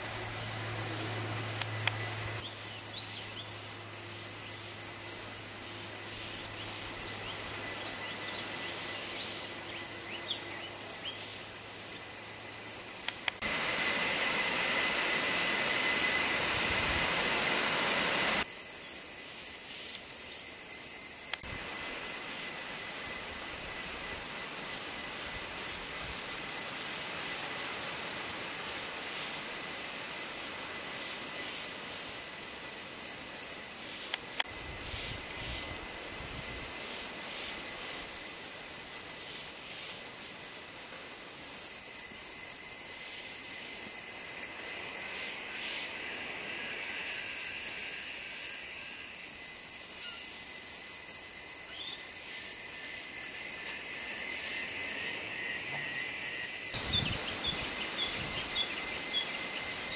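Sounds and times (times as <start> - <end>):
insects buzzing shrilly: 0.0 - 59.9.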